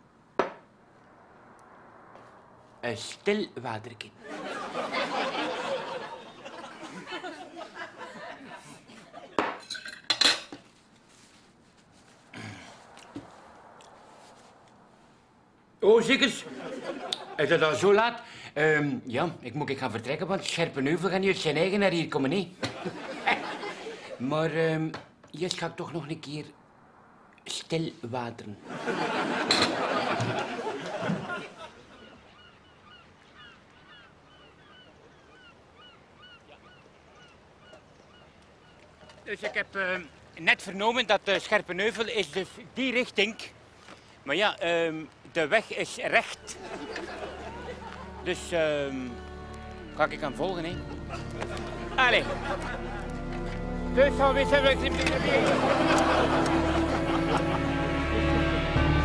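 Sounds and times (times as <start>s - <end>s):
cutlery and crockery clinking: 9.4s - 10.6s
distant birds honking: 28.8s - 39.3s, 46.3s - 48.4s, 55.1s - 59.0s.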